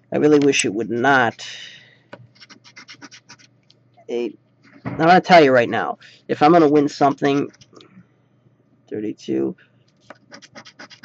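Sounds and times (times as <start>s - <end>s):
coin scratching lottery ticket: 2.4s - 3.5s, 10.0s - 11.0s.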